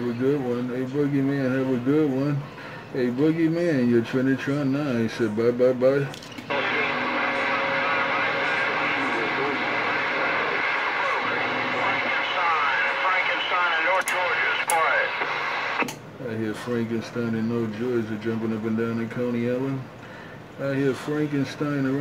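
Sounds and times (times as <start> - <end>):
faint garbled radio voices: 0.0 - 22.0
radio static hiss: 6.5 - 16.0.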